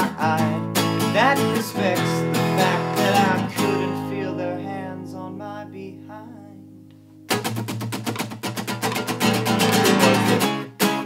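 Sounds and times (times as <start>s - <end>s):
flamenco guitar strumming: 0.0s - 6.0s, 7.0s - 11.0s.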